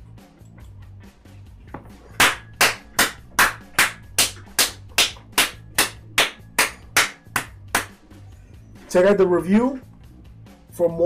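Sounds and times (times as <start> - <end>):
quiet background music: 0.0 - 11.0
hands clapping: 2.1 - 8.0.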